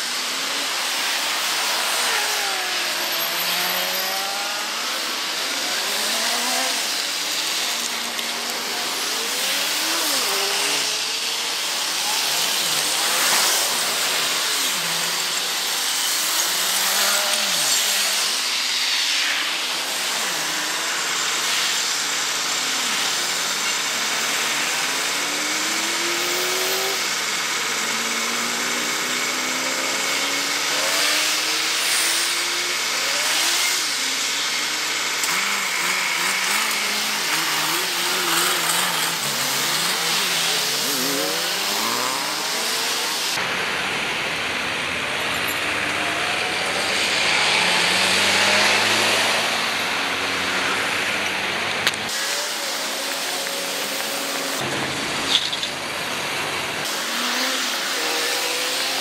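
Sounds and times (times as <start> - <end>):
cars passing by: 0.0 - 59.0
tyres hissing on asphalt: 0.0 - 59.0.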